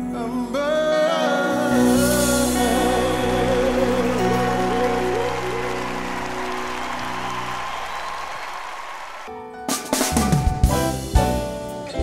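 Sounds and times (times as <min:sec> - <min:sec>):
live band held chord: 0:00.0 - 0:07.9
audience applause: 0:04.0 - 0:09.3.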